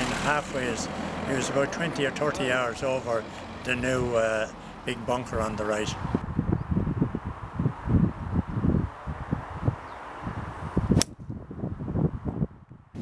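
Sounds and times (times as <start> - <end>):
wind gusts on microphone: 2.6 - 13.0
golf club striking ball: 11.0 - 11.2.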